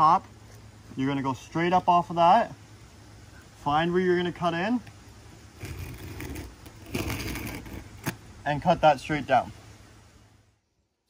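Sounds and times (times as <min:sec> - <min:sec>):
knife scraping through shingles: 0:05.6 - 0:08.2.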